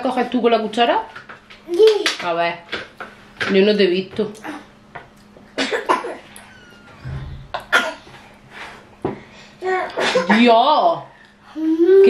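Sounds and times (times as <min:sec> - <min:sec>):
person coughing: 0:07.4 - 0:08.1.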